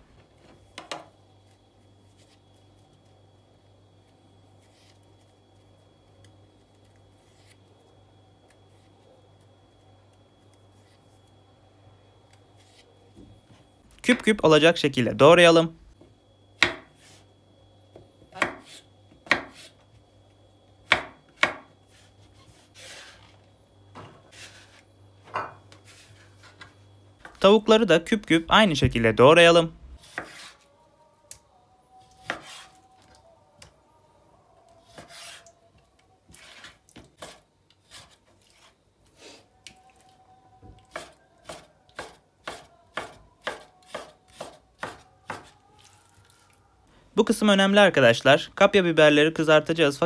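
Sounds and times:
low steady hum: 0.0 - 43.4
knife scraping mushroom skin: 4.5 - 5.3, 6.7 - 7.7, 21.9 - 23.3, 32.2 - 32.8, 34.8 - 35.6, 36.3 - 38.8
knife chopping on cutting board: 16.6 - 17.0, 18.3 - 19.7, 20.8 - 21.7, 30.0 - 30.6, 32.2 - 32.8, 34.8 - 35.4, 40.9 - 45.6.

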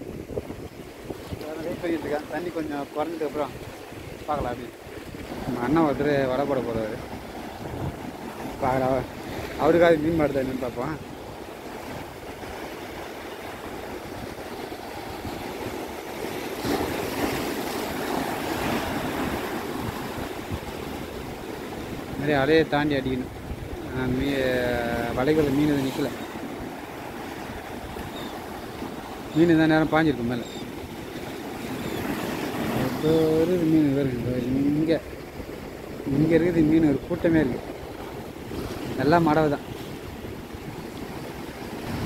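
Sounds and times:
wind buffeting microphone: 0.0 - 2.2, 6.9 - 25.7
sea surf on rocks: 0.0 - 42.0
man talking: 1.4 - 3.5, 4.3 - 4.7, 5.4 - 7.0, 8.6 - 11.0, 22.2 - 26.2, 29.4 - 30.6, 32.8 - 35.1, 36.1 - 37.6, 39.0 - 39.6.

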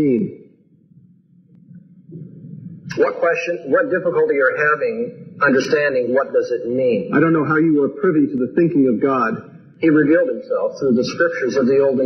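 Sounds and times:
man speaking: 0.0 - 0.3, 2.9 - 12.0
hall background noise: 0.0 - 12.0.

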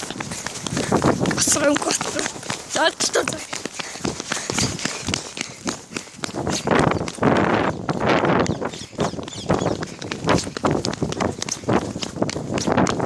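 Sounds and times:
running footfalls: 0.0 - 13.0
heavy breathing gasps: 0.1 - 1.3, 3.4 - 6.8.

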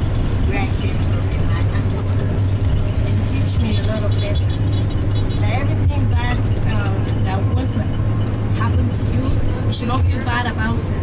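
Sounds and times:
bus engine and road noise: 0.0 - 11.0.

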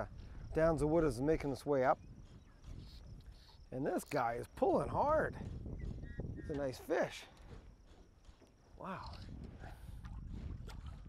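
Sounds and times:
low wind rumble: 0.0 - 11.0
water lapping against boat: 0.0 - 11.0.

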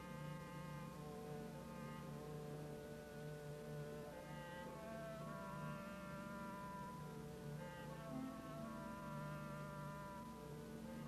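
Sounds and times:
soft orchestral held notes: 0.0 - 11.0.

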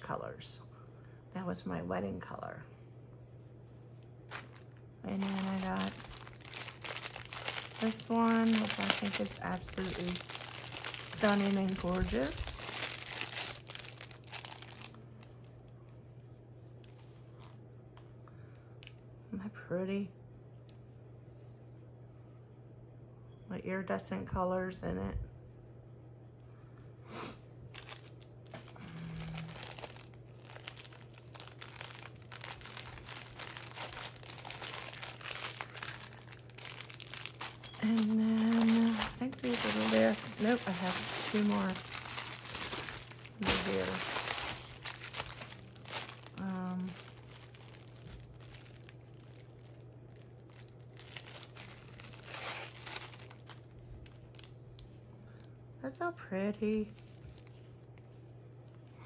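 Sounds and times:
plastic bags crinkling: 4.3 - 15.5, 27.7 - 54.5.

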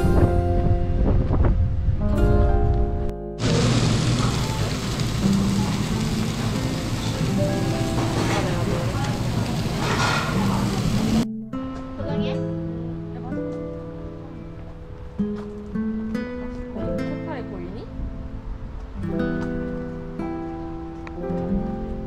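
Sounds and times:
meat sizzling on a grill: 3.4 - 11.2
background music: 11.0 - 22.0.

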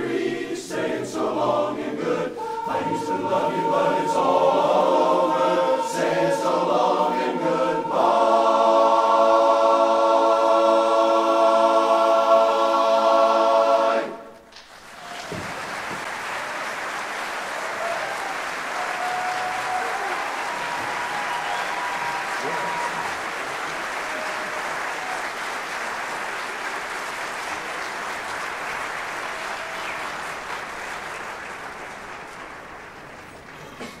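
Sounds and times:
a cappella chorus singing: 0.0 - 14.4
audience applause: 14.5 - 34.0
cheering: 14.7 - 33.9
whistles: 17.7 - 23.2, 29.4 - 31.5.

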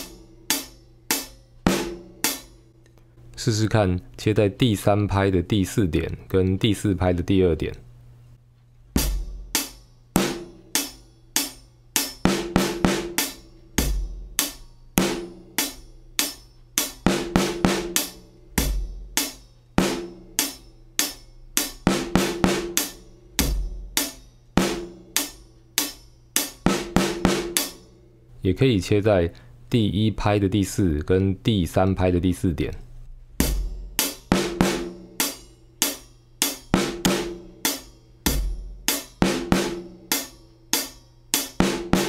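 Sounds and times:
damped snare drum: 0.0 - 2.7, 8.9 - 27.9, 33.1 - 42.0
hi-hat strokes: 0.0 - 3.2, 9.0 - 28.3, 33.0 - 42.0.

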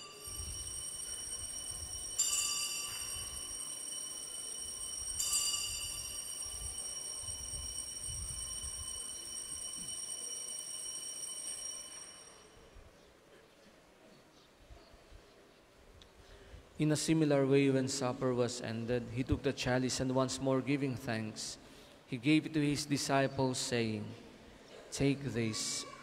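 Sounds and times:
altar bells ringing: 0.0 - 12.8.

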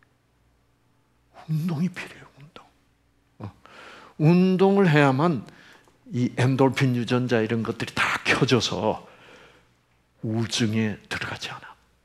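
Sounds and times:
man lecturing: 1.4 - 2.7, 4.2 - 9.1, 10.2 - 11.8.

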